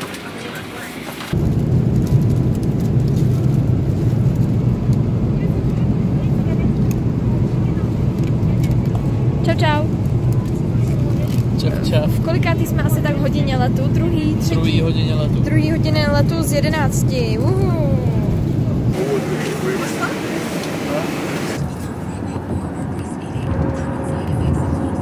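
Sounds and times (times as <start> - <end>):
airliner cabin rumble: 0.0 - 25.0.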